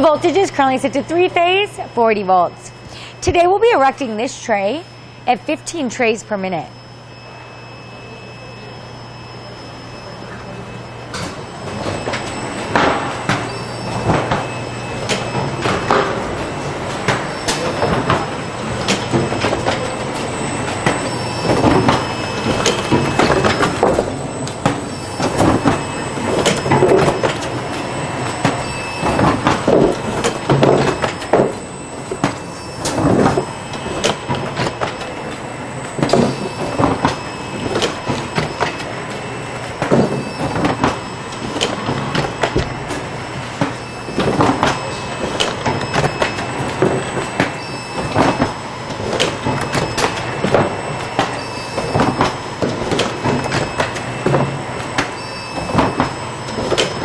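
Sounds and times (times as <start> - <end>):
steady machine hum: 0.0 - 57.0
machine clanks and knocks: 11.2 - 57.0.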